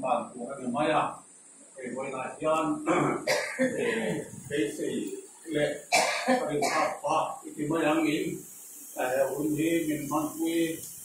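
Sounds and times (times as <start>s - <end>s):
people talking: 0.0s - 1.2s, 1.8s - 10.9s
person clearing throat: 2.9s - 4.3s, 5.9s - 7.0s.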